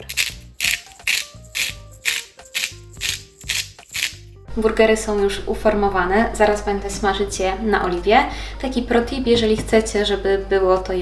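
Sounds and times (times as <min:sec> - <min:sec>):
spice shaker rattling: 0:00.0 - 0:04.3
background music: 0:00.0 - 0:11.0.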